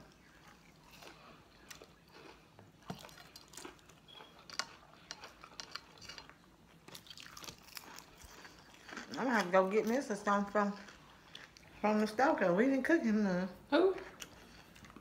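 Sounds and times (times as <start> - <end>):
chewing crunchy fried food: 0.0 - 12.3, 13.9 - 15.0.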